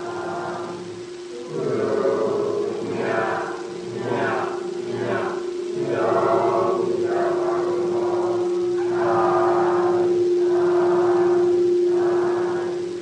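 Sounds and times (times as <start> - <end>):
voices chanting a long note: 0.0 - 13.0.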